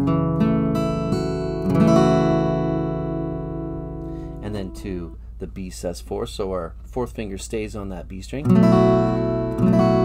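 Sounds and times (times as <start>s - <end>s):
acoustic guitar strumming chord: 0.0s - 5.3s, 8.5s - 10.0s.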